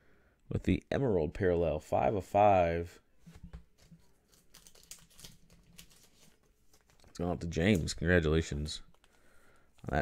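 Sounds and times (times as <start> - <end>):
card handling crinkling: 3.3 - 10.0.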